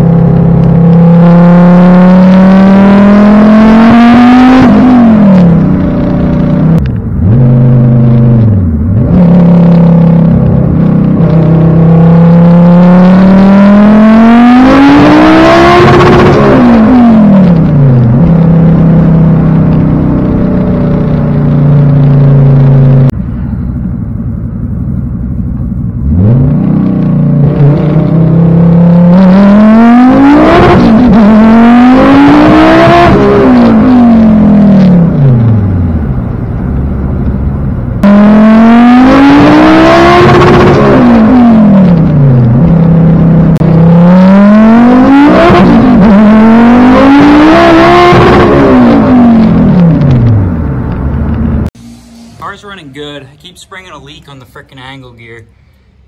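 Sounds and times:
car engine accelerating through gears: 0:00.0 - 0:24.0, 0:25.5 - 0:54.3.

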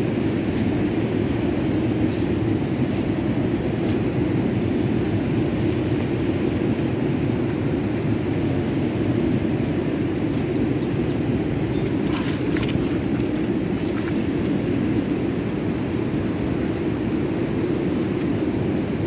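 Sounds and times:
ocean surf on rocky shore: 0:00.0 - 0:19.0.

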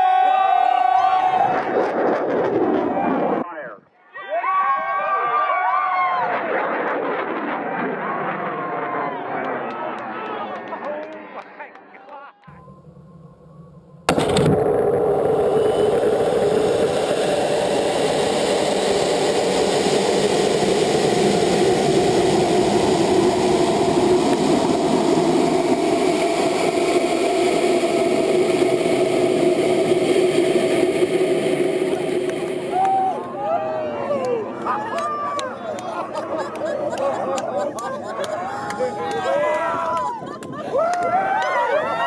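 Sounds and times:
loud steady rushing noise: 0:12.6 - 0:34.8
people's excited voices: 0:32.7 - 0:42.0.

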